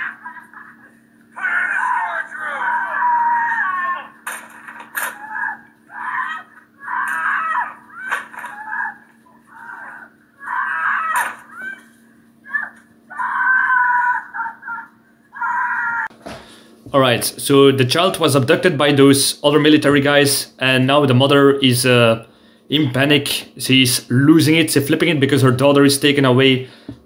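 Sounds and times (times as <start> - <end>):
steady hum: 0.0 - 27.0
people shouting: 1.4 - 4.2, 4.9 - 16.1
woman screaming: 1.4 - 4.2, 5.1 - 16.1.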